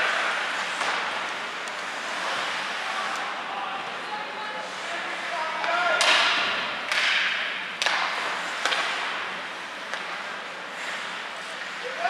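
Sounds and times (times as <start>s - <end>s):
hockey stick hitting puck: 0.0s - 1.8s, 5.6s - 9.2s
skate blades scraping ice: 0.0s - 3.4s, 7.9s - 12.0s.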